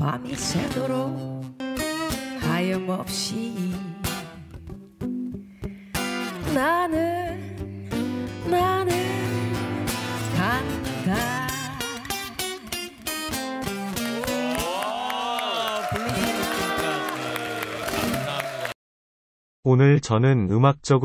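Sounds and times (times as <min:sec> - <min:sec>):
woman singing blues: 0:00.0 - 0:01.6, 0:02.2 - 0:04.4, 0:06.0 - 0:13.9, 0:16.0 - 0:17.2
acoustic guitar: 0:00.0 - 0:15.1.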